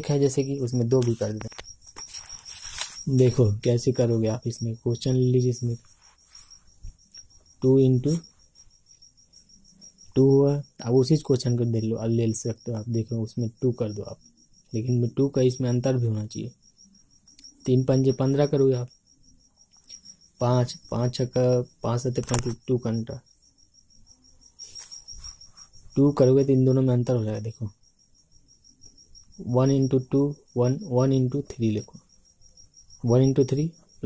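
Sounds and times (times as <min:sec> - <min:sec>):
cricket trilling: 0:00.0 - 0:34.0.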